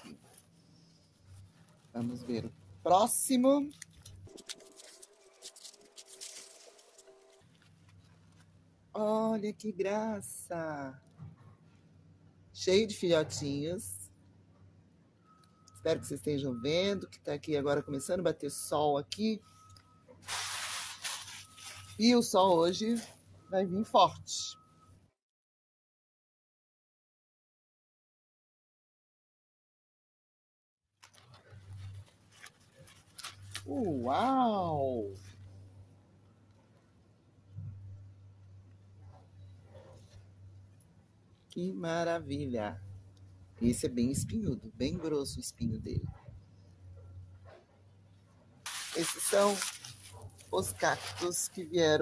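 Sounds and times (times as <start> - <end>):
paper wrapping crinkling: 0.0 - 8.5, 20.2 - 23.2, 31.0 - 34.3, 48.7 - 51.7.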